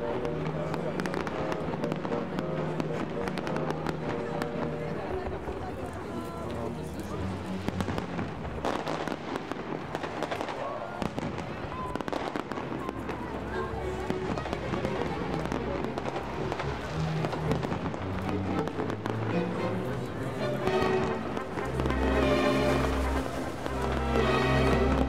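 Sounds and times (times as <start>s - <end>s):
fireworks bursting and crackling: 0.0s - 25.0s.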